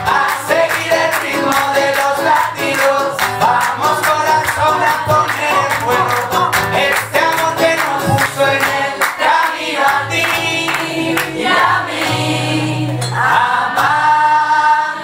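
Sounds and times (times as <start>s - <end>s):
man singing into microphone: 0.0s - 9.0s
acoustic guitar strumming: 0.0s - 15.0s.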